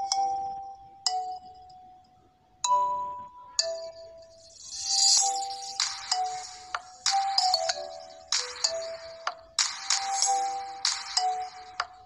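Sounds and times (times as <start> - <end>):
bright electronic melody: 2.6 - 12.0
percussive beat: 5.3 - 12.0.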